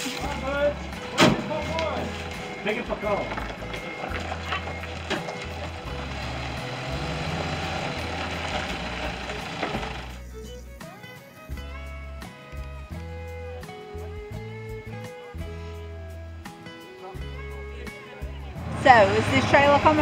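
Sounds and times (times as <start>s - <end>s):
tires on gravel: 0.0s - 10.2s, 18.6s - 20.0s
forklift engine running: 0.0s - 10.3s, 18.5s - 20.0s
acoustic guitar music: 0.0s - 20.0s.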